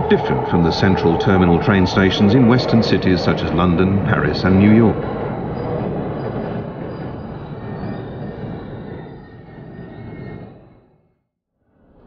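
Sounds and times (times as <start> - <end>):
train wheel and rail rumble: 0.0 - 11.0.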